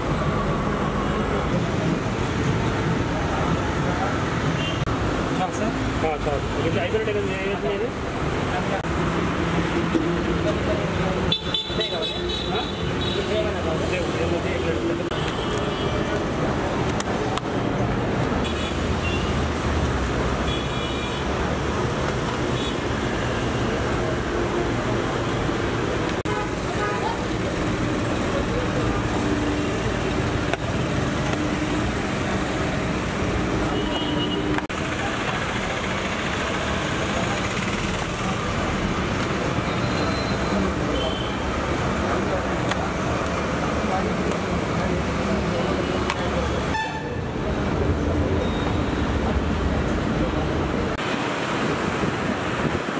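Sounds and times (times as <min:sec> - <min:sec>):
road traffic noise: 0:00.0 - 0:52.9
people's voices: 0:23.5 - 0:51.0.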